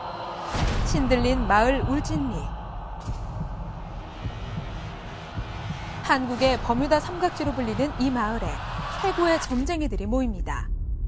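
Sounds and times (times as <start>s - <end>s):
low rumbling drone: 0.0s - 11.0s
heartbeat-like thumps: 0.6s - 11.0s.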